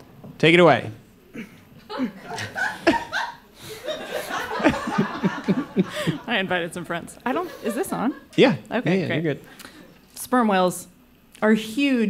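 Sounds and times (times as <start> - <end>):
audience laughing: 1.9 - 6.5, 7.3 - 8.4.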